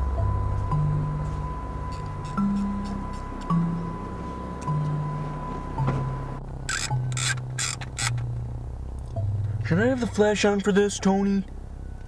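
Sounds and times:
background music with bass line: 0.0s - 12.0s
camera shutter clicks: 6.7s - 8.2s.

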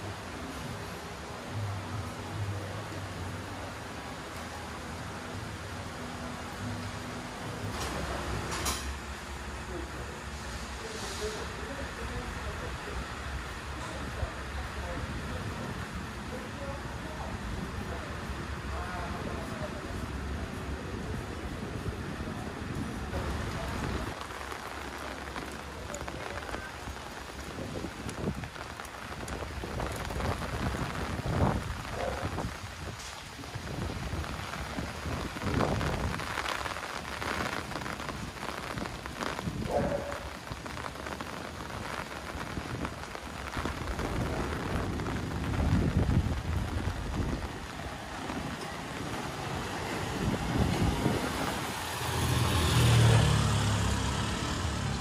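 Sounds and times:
rain on a wet street: 0.0s - 55.0s.

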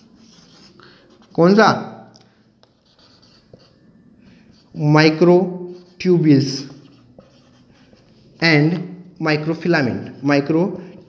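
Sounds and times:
marker scratching on whiteboard: 0.0s - 1.6s, 2.6s - 3.8s, 4.5s - 11.0s.

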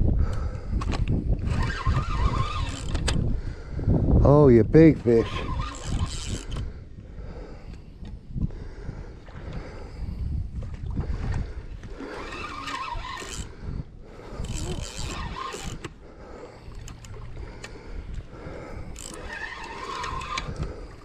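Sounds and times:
wind rumbling on microphone: 0.0s - 21.0s
fishing reel cranking: 0.8s - 3.3s, 5.0s - 6.8s, 12.0s - 16.0s, 16.6s - 21.0s.

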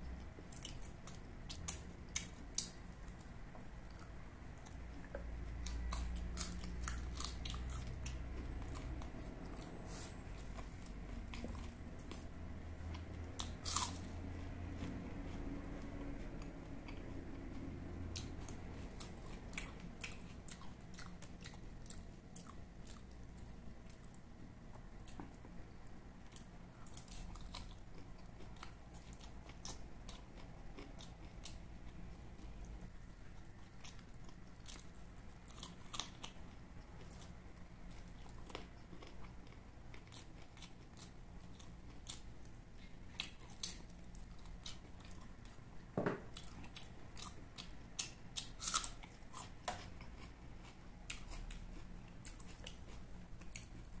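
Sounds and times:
steady low hum: 0.0s - 54.0s
chewing with wet mouth clicks: 0.2s - 9.8s, 14.8s - 25.4s, 26.2s - 45.6s, 46.3s - 54.0s.

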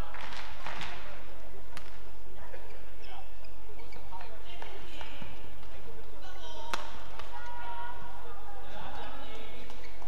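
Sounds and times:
shoes squeaking on court: 2.5s - 5.4s, 9.5s - 10.0s.

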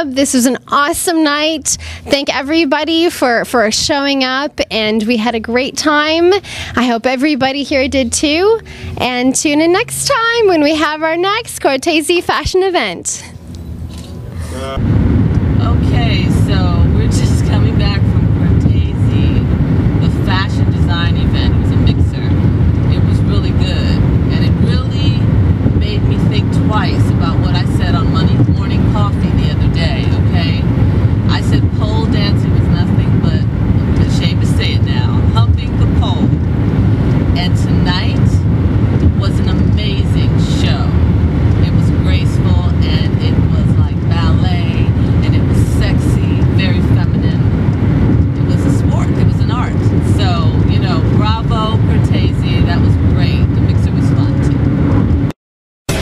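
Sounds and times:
woman talking: 0.0s - 13.4s, 15.6s - 36.4s, 37.3s - 47.5s, 48.3s - 54.6s
car cabin road and engine rumble: 0.5s - 12.4s, 13.3s - 55.3s.

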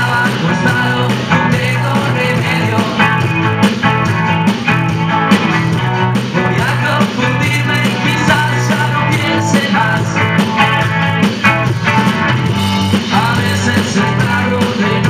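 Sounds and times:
live rock band playing: 0.0s - 15.0s.

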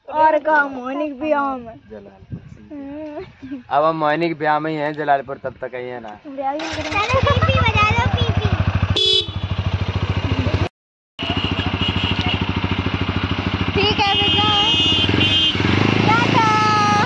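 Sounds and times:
voices calling out: 6.6s - 8.8s, 11.2s - 17.0s
motorcycle engine idling: 6.6s - 17.0s.

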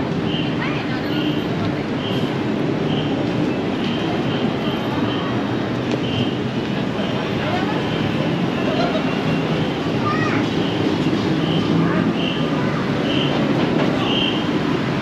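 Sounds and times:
road traffic: 0.0s - 15.0s
passers-by talking: 0.1s - 15.0s.

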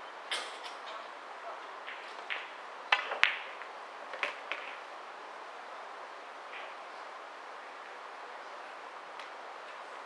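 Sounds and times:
indoor hall background hiss: 0.0s - 10.0s.

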